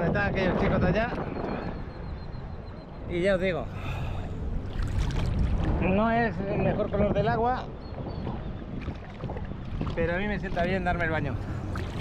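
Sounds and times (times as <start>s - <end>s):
small waves lapping: 3.4s - 5.8s, 7.9s - 12.0s.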